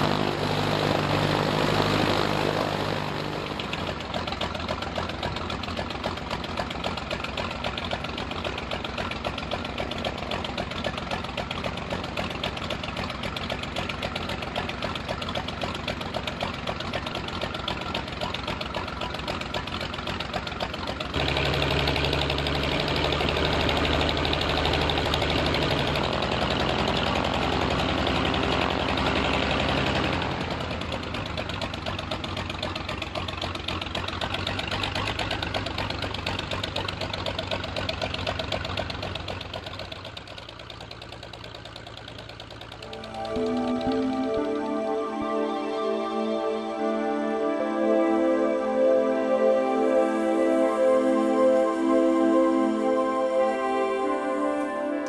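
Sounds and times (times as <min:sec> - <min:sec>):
piston aircraft engine idling: 0:00.0 - 0:48.6.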